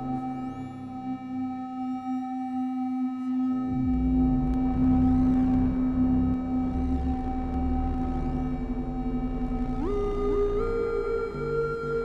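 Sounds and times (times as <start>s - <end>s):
synthesizer drone: 3.7s - 12.0s.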